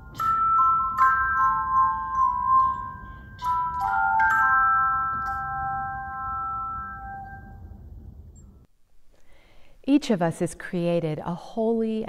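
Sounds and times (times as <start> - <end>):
handbell chord ringing: 0.0 - 7.6.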